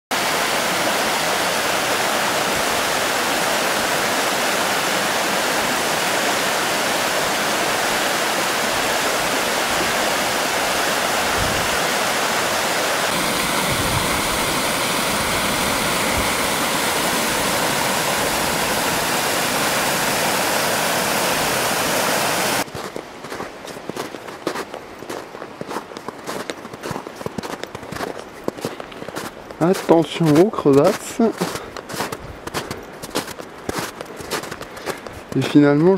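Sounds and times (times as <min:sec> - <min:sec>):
stream rushing over rocks: 0:00.1 - 0:35.9
footsteps crunching on snow: 0:13.1 - 0:20.6, 0:22.6 - 0:35.9.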